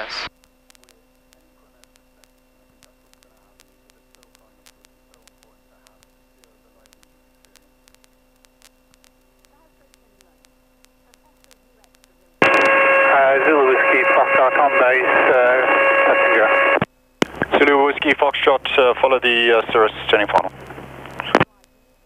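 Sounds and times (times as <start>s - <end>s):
radio voice transmissions: 0.0s - 7.8s, 9.4s - 21.6s
faint hum: 0.0s - 22.0s
steady whine: 0.0s - 22.0s.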